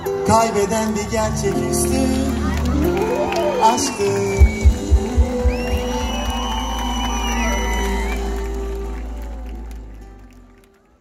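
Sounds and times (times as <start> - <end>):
live pop band: 0.0 - 10.5
crowd cheering: 0.0 - 11.0
drum hits: 4.4 - 6.5.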